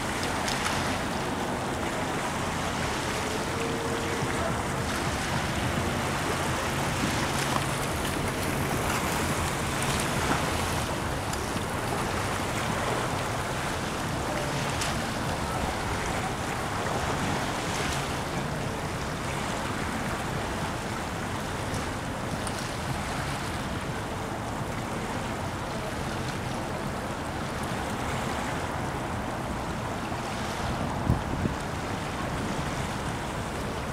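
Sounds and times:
water washing along shore: 0:00.0 - 0:33.9
wind: 0:00.0 - 0:33.9.

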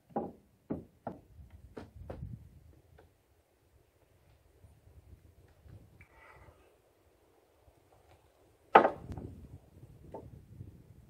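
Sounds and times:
wood-on-wood knocks: 0:00.1 - 0:02.2.

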